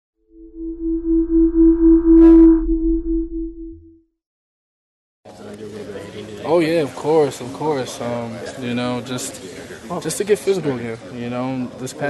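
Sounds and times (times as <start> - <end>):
low hum: 0.2 - 4.0
pulsing electronic tone: 0.2 - 4.0.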